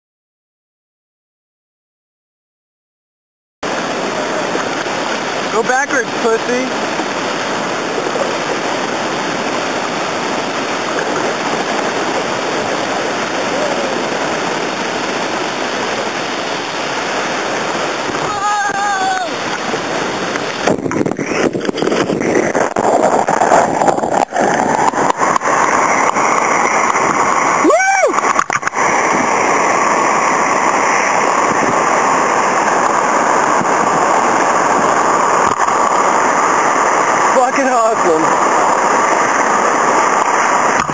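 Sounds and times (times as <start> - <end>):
water rushing over a dam: 3.6 - 40.9
person whooping: 18.3 - 19.4, 27.6 - 28.2.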